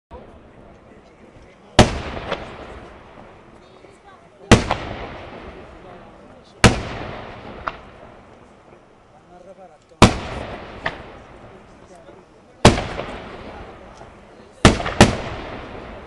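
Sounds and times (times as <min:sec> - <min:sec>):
fireworks bursting: 0:00.1 - 0:16.0
sharp crack with echo: 0:01.8 - 0:03.4, 0:04.5 - 0:05.9, 0:06.6 - 0:08.4, 0:09.9 - 0:12.0, 0:12.6 - 0:16.0.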